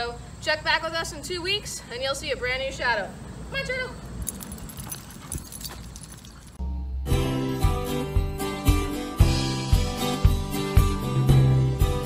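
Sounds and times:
leash hardware jingling: 4.0 - 6.6.

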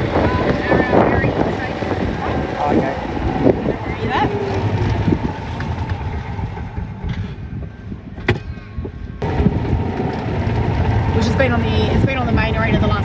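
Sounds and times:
golf buggy motor rumbling: 0.0 - 13.0.

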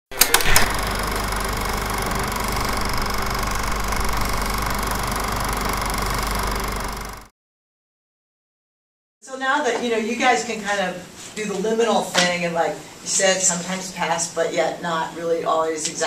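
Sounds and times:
film projector clattering: 0.1 - 7.3
film projector clicks: 0.1 - 7.3.

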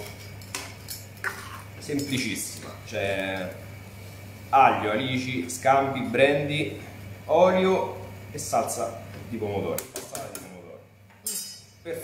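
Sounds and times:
metal spoon clinking on saucepan: 11.3 - 11.8.

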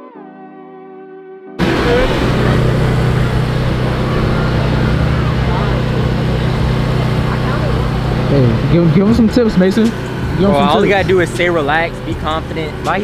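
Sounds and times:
portable generator running: 1.6 - 13.0.

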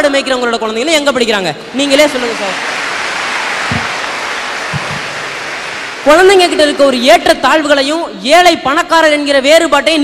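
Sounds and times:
audience applauding: 2.0 - 6.7.

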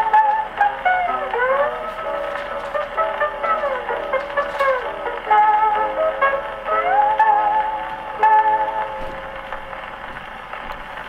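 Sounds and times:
record stylus hiss: 0.0 - 11.0
faint record clicks: 0.8 - 5.3, 8.8 - 11.0.

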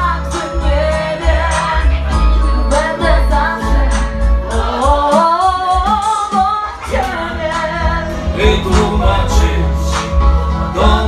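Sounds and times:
woman singing karaoke: 0.0 - 8.7
backing track with heavy bass: 0.0 - 11.0.

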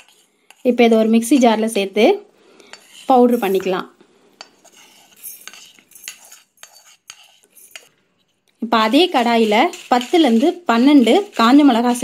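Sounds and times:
spatula scraping pan: 0.0 - 1.7, 2.6 - 12.0.

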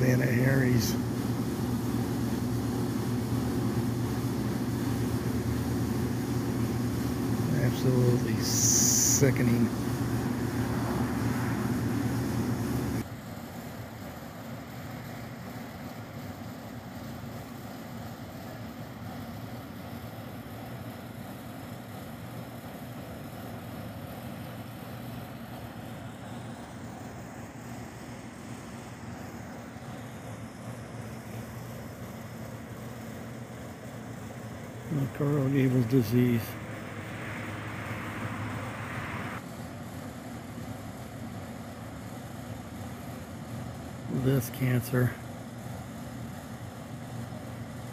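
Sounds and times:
mechanical hum with rushing noise: 0.0 - 47.9
quiet background hum: 0.0 - 47.9.

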